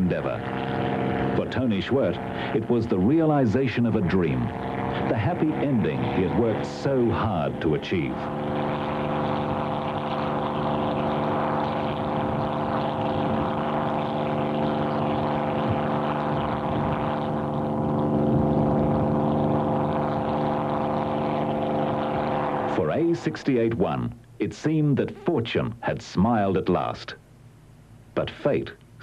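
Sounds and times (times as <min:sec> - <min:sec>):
aircraft engine droning: 0:00.0 - 0:29.0.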